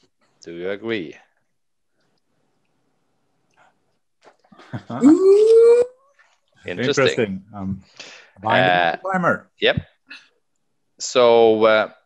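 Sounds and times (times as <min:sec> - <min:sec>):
person calling with rising pitch: 0:05.0 - 0:06.0.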